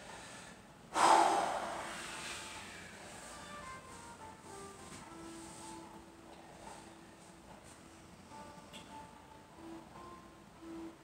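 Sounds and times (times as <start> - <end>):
man's forceful breath out: 0.0 - 3.2.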